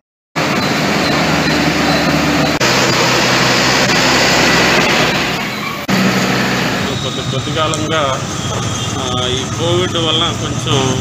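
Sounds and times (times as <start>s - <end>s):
tractor engine running: 0.4s - 11.0s.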